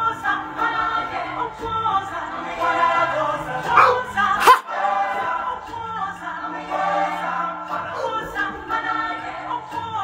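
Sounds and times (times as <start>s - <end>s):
chorus singing: 0.0s - 10.0s.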